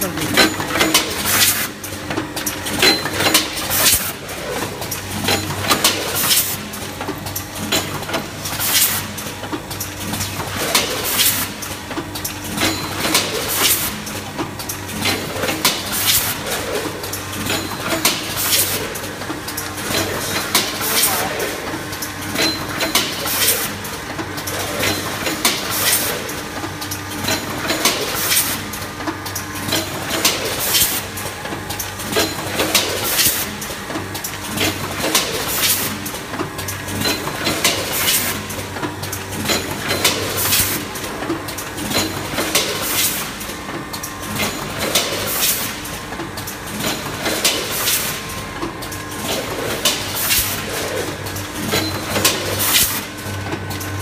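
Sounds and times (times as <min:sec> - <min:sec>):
packing machine hum: 0:00.0 - 0:54.0.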